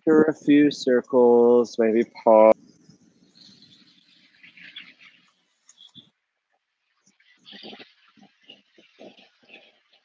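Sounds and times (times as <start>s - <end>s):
birds chirping: 0.8s - 10.0s.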